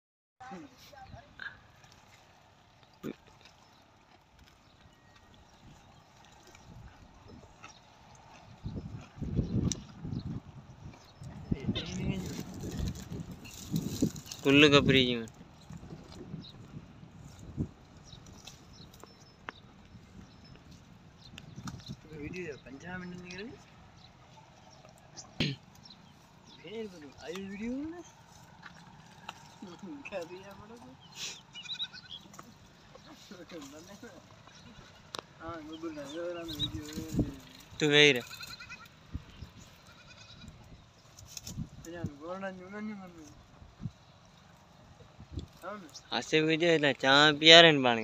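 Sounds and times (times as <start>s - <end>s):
camels munching leaves: 0.4s - 48.0s
distant animal bleating: 31.3s - 32.4s, 38.2s - 38.9s, 39.7s - 40.7s.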